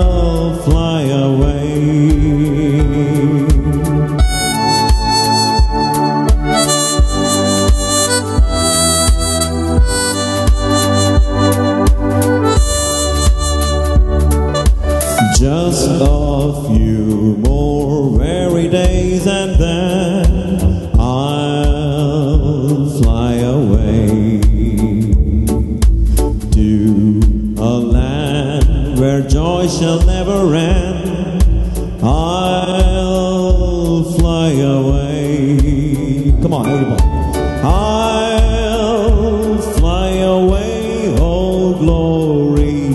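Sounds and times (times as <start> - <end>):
man singing into a microphone: 0.0 - 9.1, 15.1 - 42.9
amplified instrumental backing: 0.0 - 42.9
steady drum beat: 0.0 - 42.9.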